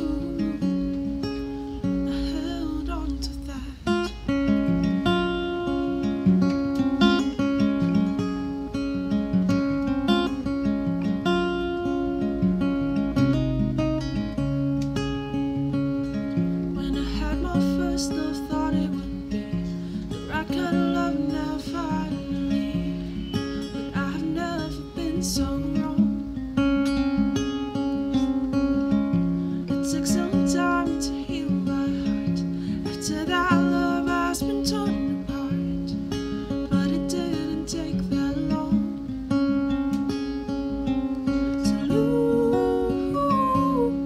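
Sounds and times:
woman singing: 0.0 - 4.4, 16.7 - 26.4, 29.6 - 39.4, 41.2 - 44.0
acoustic guitar chords: 0.0 - 44.0.

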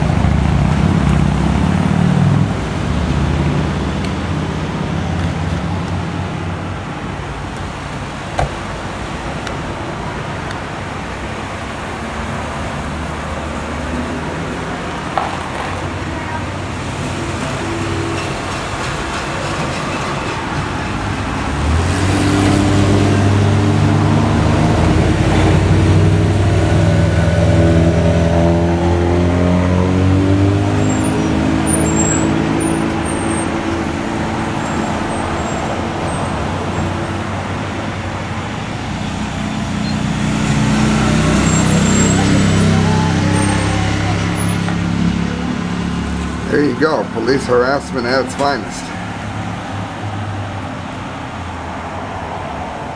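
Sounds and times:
traffic noise: 0.0 - 52.9
vehicles passing: 0.0 - 52.9.

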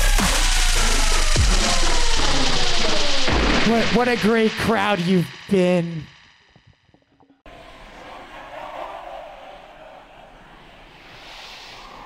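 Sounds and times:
voice with echo: 3.6 - 6.1.

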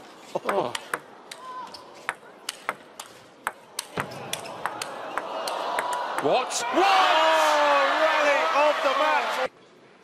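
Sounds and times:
crowd noise: 0.0 - 9.6.

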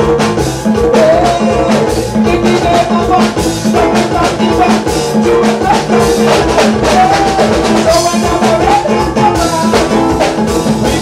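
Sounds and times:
live band music: 0.0 - 11.0
repeating drum beat: 0.0 - 11.0.

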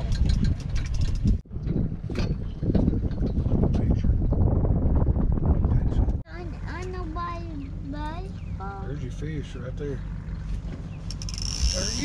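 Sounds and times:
wind rumbling on microphone: 0.0 - 8.8, 10.1 - 12.0
fishing reel clicking: 11.1 - 12.0.

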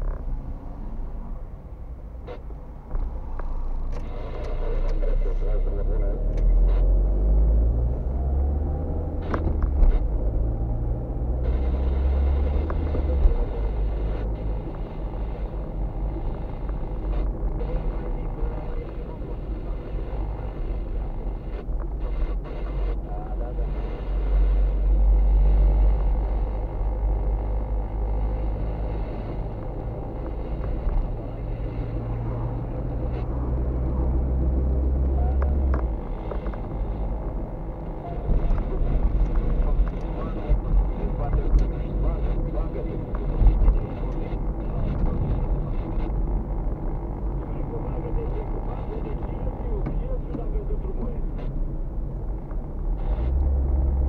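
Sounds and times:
car engine and road noise: 0.0 - 54.0.

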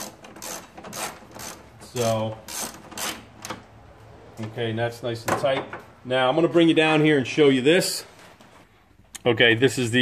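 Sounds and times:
ratchet wrench clicking: 0.0 - 1.6, 2.5 - 3.2.

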